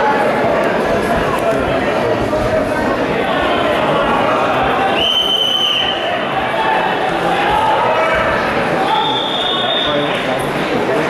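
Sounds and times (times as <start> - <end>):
spectators' voices echoing: 0.0 - 11.0
referee's whistle: 5.0 - 6.0, 8.9 - 10.0.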